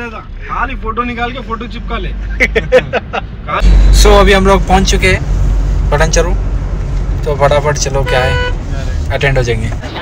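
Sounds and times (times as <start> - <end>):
men talking: 0.0 - 9.9
car rumble: 0.0 - 10.0
men laughing: 2.2 - 3.5.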